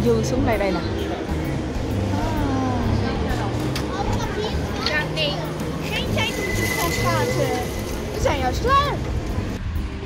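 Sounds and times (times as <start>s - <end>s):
young children talking: 0.3s - 1.4s, 2.1s - 9.2s
children squealing: 6.0s - 9.0s.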